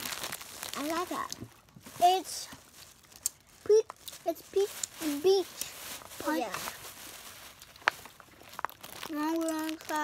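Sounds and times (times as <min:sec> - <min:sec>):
cardboard box crinkling: 0:00.0 - 0:10.0.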